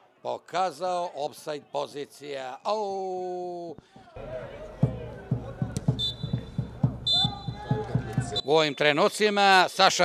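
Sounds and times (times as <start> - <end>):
referee's whistle blowing: 5.9 - 9.3.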